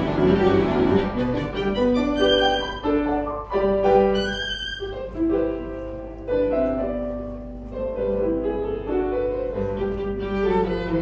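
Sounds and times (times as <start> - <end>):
piano accompaniment: 0.0 - 11.0
violin melody: 0.0 - 11.0.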